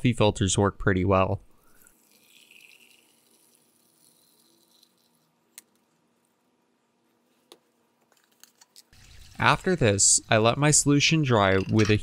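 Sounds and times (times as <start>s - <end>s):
liquid trickling into glass beaker: 1.6s - 5.3s, 9.0s - 9.8s.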